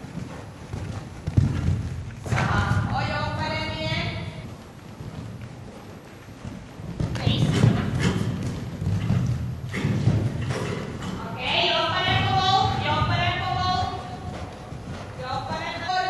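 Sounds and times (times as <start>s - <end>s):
horse hoofbeats on sand: 0.0s - 16.0s.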